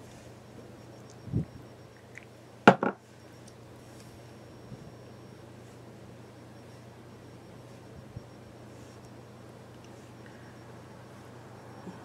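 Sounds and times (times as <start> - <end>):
object thumping on hard surface: 2.7 - 3.0.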